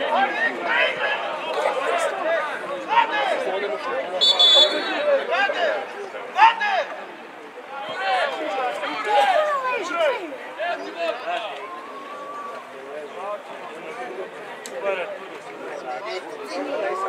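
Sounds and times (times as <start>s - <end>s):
voices calling out and talking: 0.0s - 17.0s.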